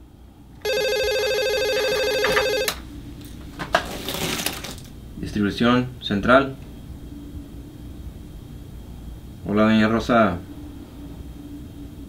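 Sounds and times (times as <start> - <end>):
desk telephone ringing: 0.6 - 2.8
telephone handset clicks and rustling: 1.8 - 2.8.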